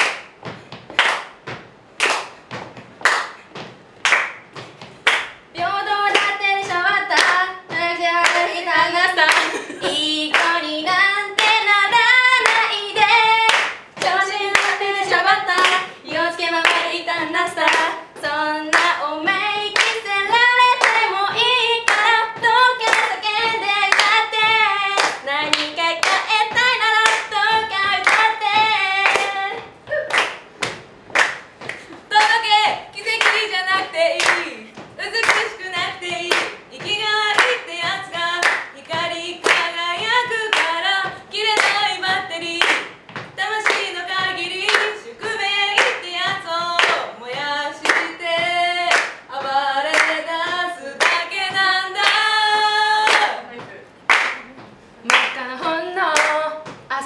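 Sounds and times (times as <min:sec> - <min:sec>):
hands clapping a beat: 0:00.0 - 0:56.9
woman singing a cappella: 0:05.5 - 0:30.1, 0:32.0 - 0:57.0.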